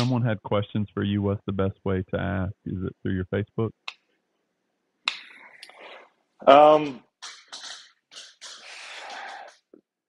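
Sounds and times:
short breath: 8.5s - 9.6s.

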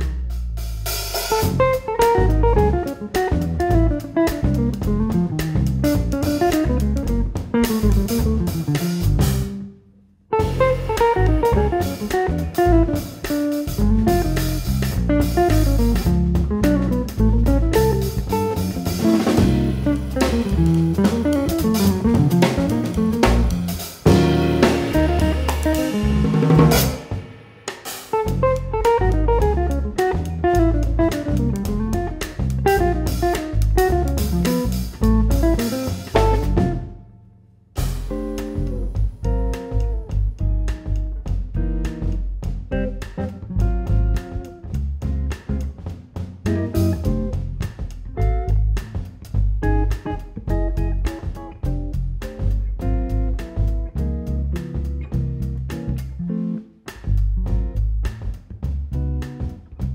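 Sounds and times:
drum kit: 0.0s - 9.7s, 10.3s - 37.1s, 37.7s - 59.9s
electric bass guitar: 0.0s - 59.9s.

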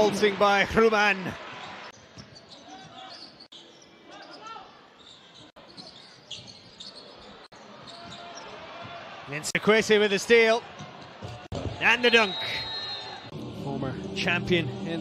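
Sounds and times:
shoe squeaks: 1.9s - 8.5s.

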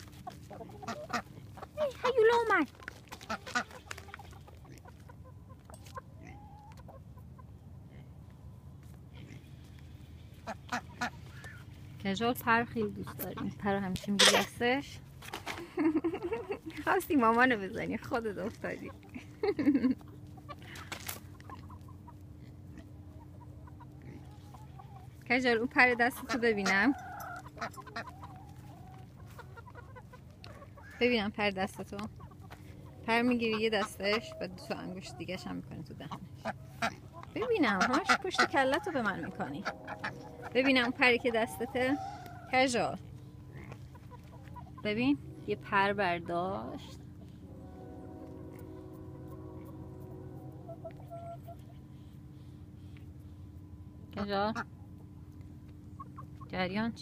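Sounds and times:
chickens clucking faintly: 0.0s - 14.8s
hens clucking: 0.0s - 47.6s, 48.4s - 56.8s
low steady background rumble: 0.0s - 57.0s.

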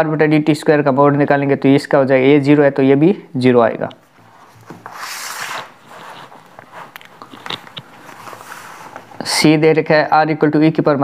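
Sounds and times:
paper and book handled: 4.2s - 9.2s.

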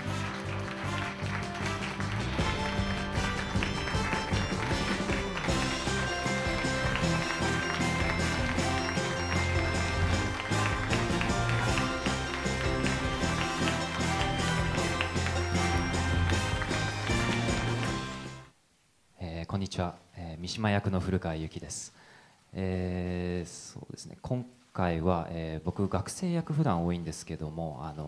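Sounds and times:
held music notes: 0.0s - 18.5s
steady drum beat: 1.3s - 18.4s.

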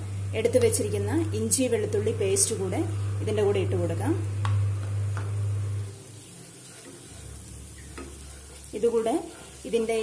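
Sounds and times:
low steady hum: 0.0s - 10.0s
paste frying: 5.8s - 10.0s.

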